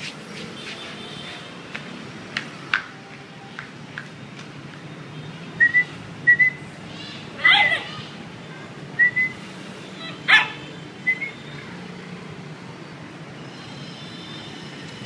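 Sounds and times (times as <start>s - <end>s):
puppy yelp: 7.4s - 8.1s, 10.0s - 10.6s.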